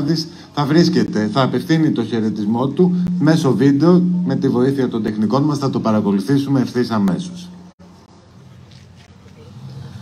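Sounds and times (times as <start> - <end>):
low rumble: 0.7 - 7.8.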